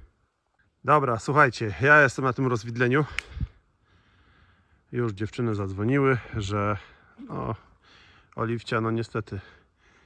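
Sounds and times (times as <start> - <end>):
man speaking: 4.9 - 7.7, 8.4 - 9.6.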